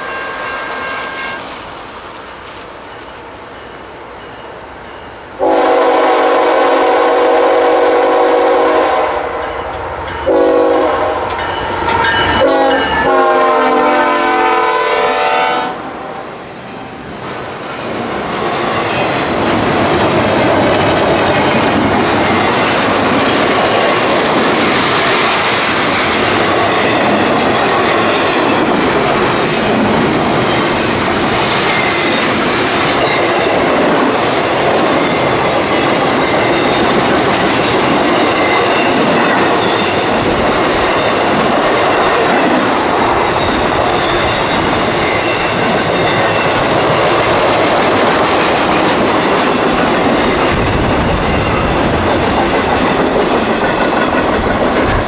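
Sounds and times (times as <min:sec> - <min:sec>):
steel wheels rushing on rail: 0:00.0 - 0:55.0.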